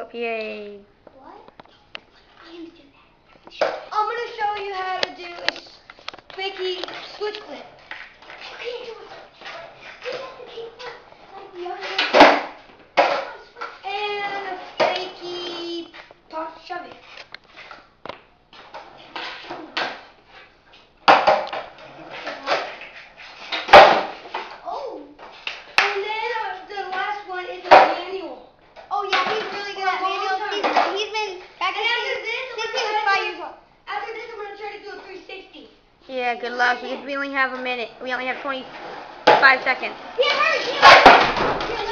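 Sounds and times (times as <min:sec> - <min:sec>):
children talking and calling out: 0:01.1 - 0:17.0, 0:24.4 - 0:41.9
skateboard clacking on concrete: 0:21.0 - 0:24.2, 0:38.4 - 0:41.9.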